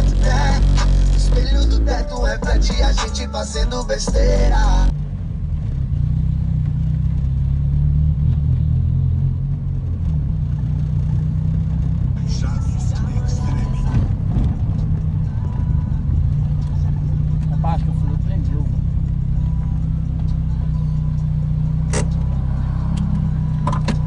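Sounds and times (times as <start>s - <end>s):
car stereo deep bass: 0.0s - 4.9s, 12.2s - 24.0s.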